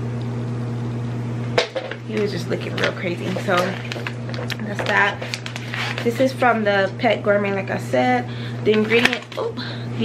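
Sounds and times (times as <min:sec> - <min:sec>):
low appliance hum: 0:00.0 - 0:10.0.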